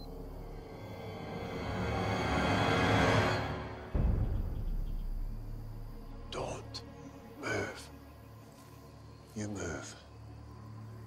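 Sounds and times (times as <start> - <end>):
tense orchestral music: 0.0 - 11.0
low rumble: 3.4 - 7.3
deep low boom: 3.9 - 6.4.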